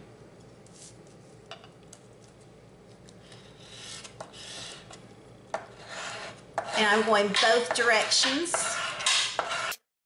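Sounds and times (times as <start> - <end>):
scratchy rubbing on glitter: 7.9 - 9.8.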